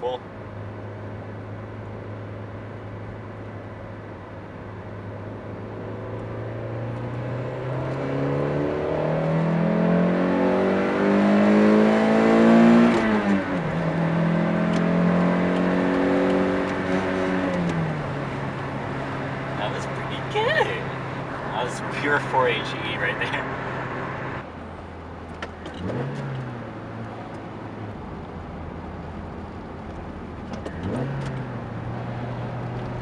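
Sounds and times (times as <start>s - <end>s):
car engine revving under full throttle: 5.6s - 24.5s, 25.6s - 27.1s, 30.6s - 33.0s.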